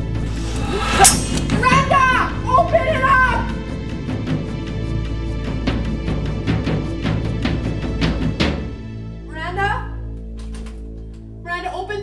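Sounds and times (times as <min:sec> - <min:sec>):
music soundtrack: 0:00.0 - 0:12.0
sharp hit: 0:00.4 - 0:01.7
children calling out: 0:00.8 - 0:03.6.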